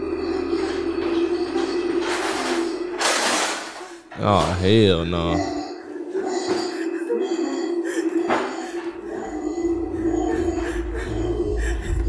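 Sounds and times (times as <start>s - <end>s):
droning music: 0.0s - 12.0s.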